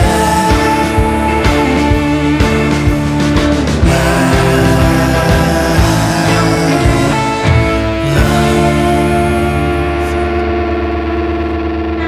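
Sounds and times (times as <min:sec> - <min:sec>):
distorted electric guitar chord: 0:00.0 - 0:12.0
fast pulsing low note: 0:00.0 - 0:12.0.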